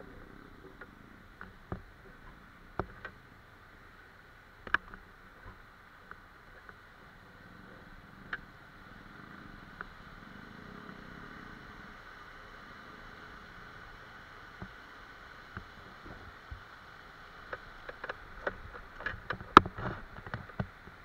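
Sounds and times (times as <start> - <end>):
stream rushing over boulders: 0.0 - 21.0.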